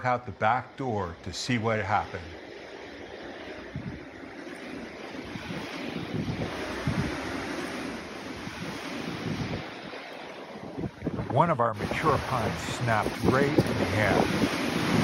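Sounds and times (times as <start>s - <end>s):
wind buffeting microphone: 0.0s - 15.0s
wind gusts through trees: 0.0s - 15.0s.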